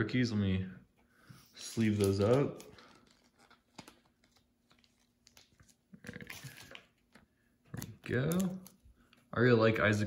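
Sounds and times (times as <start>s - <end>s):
trading cards and sleeves rustling: 1.3s - 9.5s.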